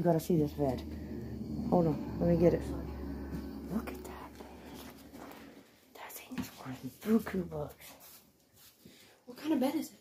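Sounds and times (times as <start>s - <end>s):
voices whispering: 0.0s - 7.3s.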